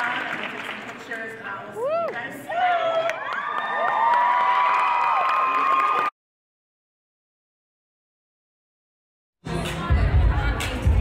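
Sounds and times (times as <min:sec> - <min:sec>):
whooping: 0:01.8 - 0:06.1
audience cheering: 0:01.9 - 0:06.1.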